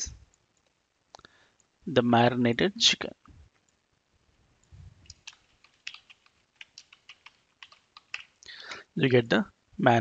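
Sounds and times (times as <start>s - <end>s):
keyboard typing clicks: 5.0s - 8.4s.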